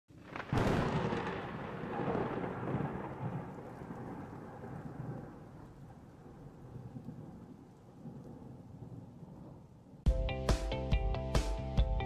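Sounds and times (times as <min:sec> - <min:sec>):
rolling thunder rumble: 0:00.1 - 0:10.0.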